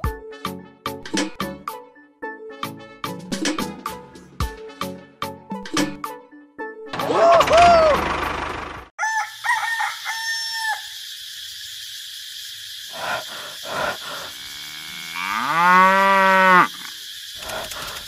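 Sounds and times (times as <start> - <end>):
cow mooing: 14.4 - 16.9.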